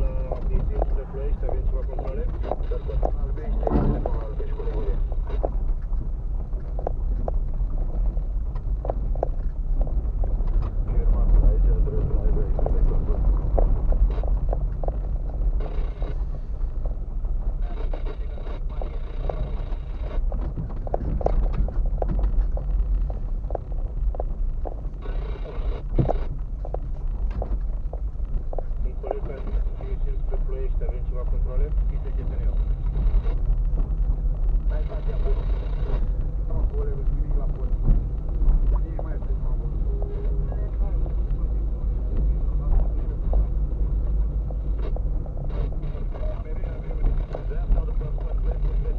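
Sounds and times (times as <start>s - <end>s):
engine and tyres rumbling: 0.0s - 48.9s
car knocks and rattles: 3.5s - 4.4s, 20.2s - 24.9s.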